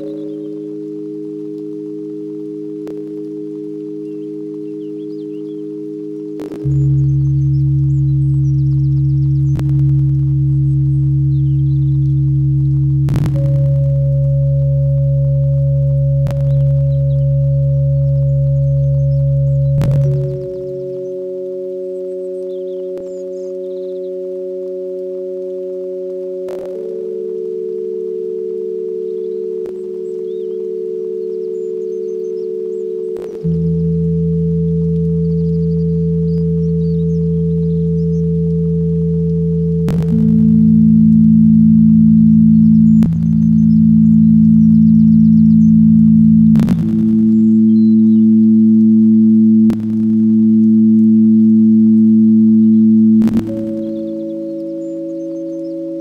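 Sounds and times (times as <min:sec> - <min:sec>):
ambient synth chords: 0:00.0 - 0:56.0
deep bass drone: 0:00.0 - 0:56.0.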